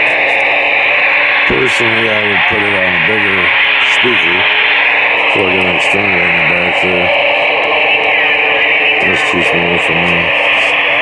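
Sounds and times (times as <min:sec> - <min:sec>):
faint wavering tones: 0:00.0 - 0:11.0
radio static hiss: 0:00.0 - 0:11.0.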